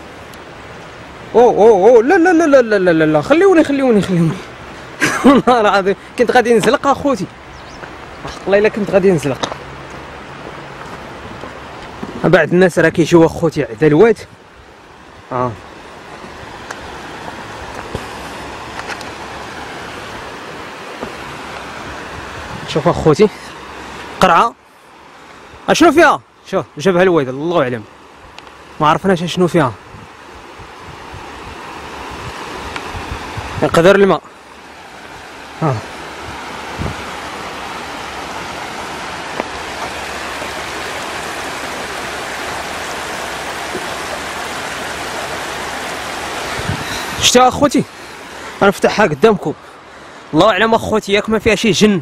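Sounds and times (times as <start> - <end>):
floodwater rushing over rocks: 0.0 - 52.0.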